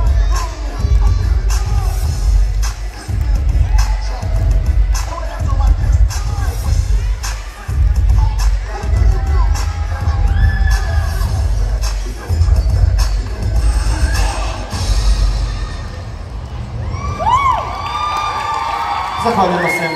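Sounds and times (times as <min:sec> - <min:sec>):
children shouting and cheering: 0:00.0 - 0:11.7, 0:13.8 - 0:19.9
dance music with heavy bass: 0:00.0 - 0:15.8.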